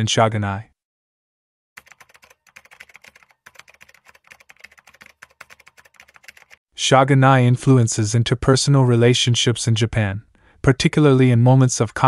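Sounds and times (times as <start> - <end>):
faint rapid irregular clicking: 1.8 - 6.6.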